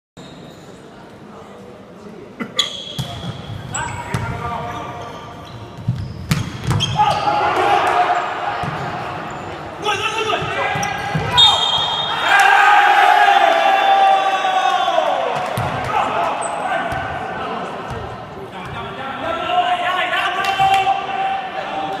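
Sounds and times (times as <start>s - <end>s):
volleyball hits: 5.8s - 7.0s, 15.4s - 16.1s
people shouting: 9.9s - 16.9s.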